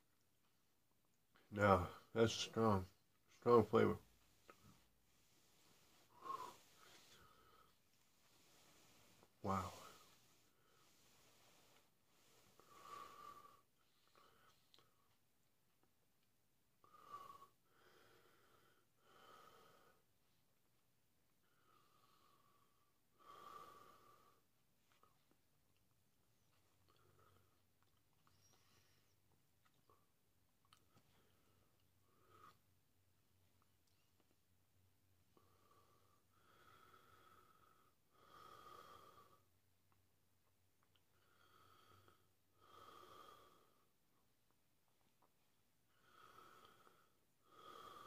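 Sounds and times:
man breathing hard: 5.2 - 13.6.

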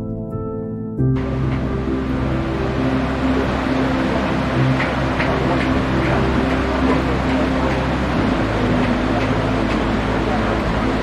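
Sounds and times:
steady low hum: 1.0 - 11.0
water rushing through waterwheel: 1.2 - 11.0.

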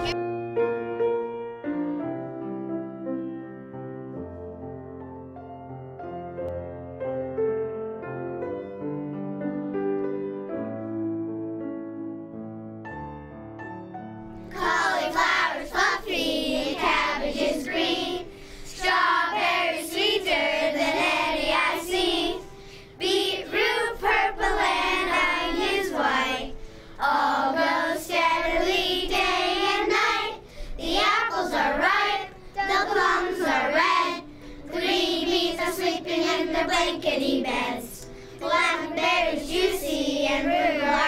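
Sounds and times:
children singing: 14.5 - 41.0.

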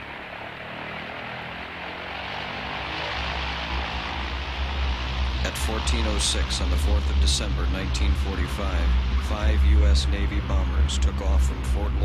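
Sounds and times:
propeller aircraft engines droning: 0.0 - 12.0
deep rumble: 1.9 - 12.0.

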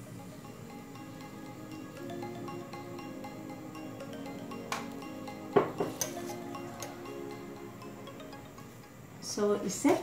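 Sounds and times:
background music: 0.0 - 9.9.

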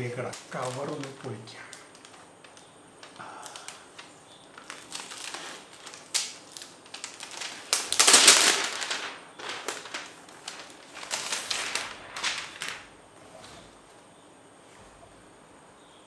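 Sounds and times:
plastic wrapping crinkling: 0.0 - 13.8.

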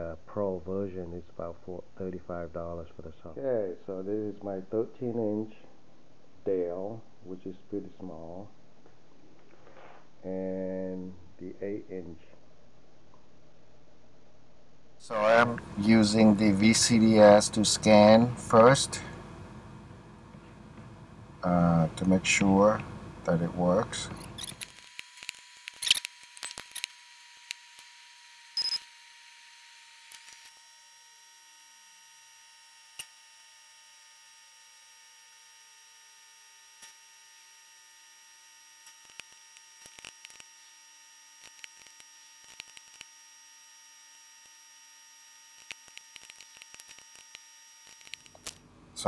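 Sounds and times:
faint electronic hum: 0.0 - 49.0
thin high whine: 15.0 - 49.0
computer mouse clicking: 45.6 - 48.6.

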